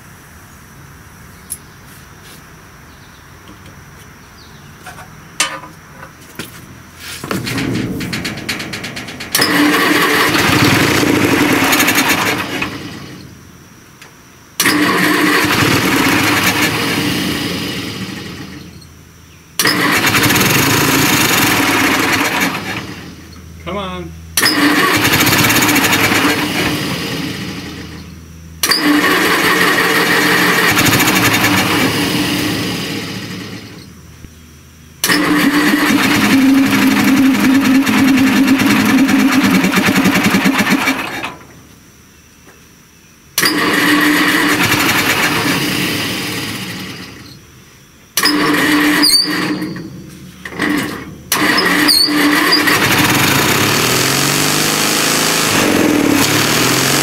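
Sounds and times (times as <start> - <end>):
small gasoline engine starting: 7.2 - 13.3, 14.6 - 18.9, 19.6 - 23.4, 24.4 - 34.0, 35.0 - 41.6, 43.4 - 47.4, 48.1 - 57.0.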